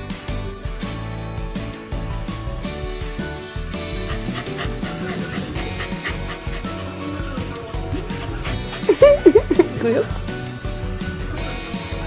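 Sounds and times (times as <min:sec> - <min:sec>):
background music: 0:00.0 - 0:12.0
puppy yipping and barking: 0:04.1 - 0:06.8.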